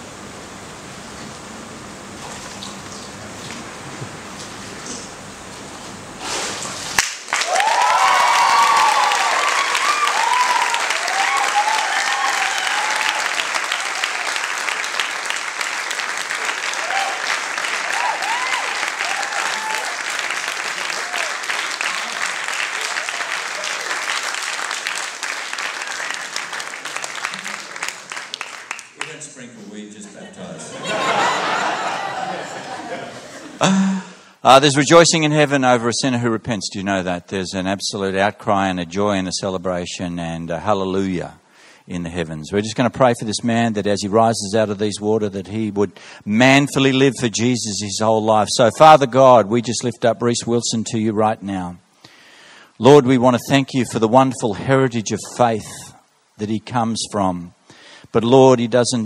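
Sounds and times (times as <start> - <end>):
congregation applauding: 7.0 - 29.6
cheering whoops: 7.4 - 14.5, 16.5 - 24.1, 31.2 - 32.9.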